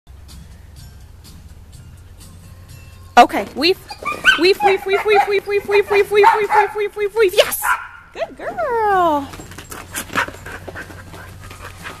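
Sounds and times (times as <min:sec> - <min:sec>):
dog cry falling in pitch: 0:03.9 - 0:06.8
dog panting: 0:03.9 - 0:06.8, 0:09.6 - 0:12.0.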